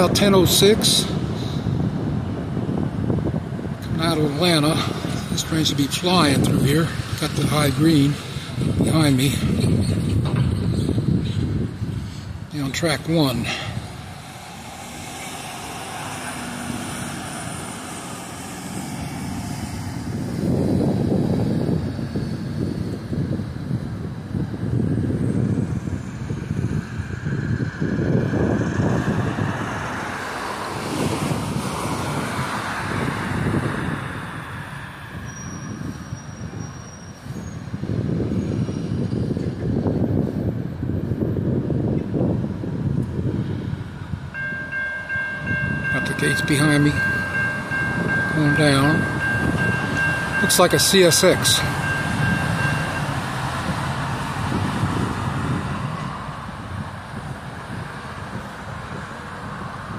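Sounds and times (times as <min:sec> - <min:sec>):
locomotive low rumble: 0:41.9 - 0:59.9.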